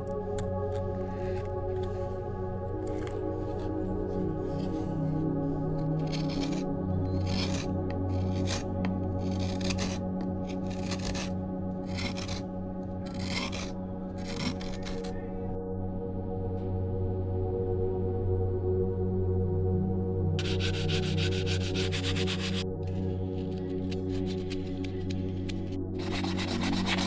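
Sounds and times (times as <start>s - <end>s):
ambient background music: 0.0s - 27.0s
carving tool scraping wood: 0.8s - 1.9s, 2.9s - 3.1s, 4.6s - 4.8s, 5.8s - 12.4s, 13.0s - 15.3s, 20.4s - 27.0s.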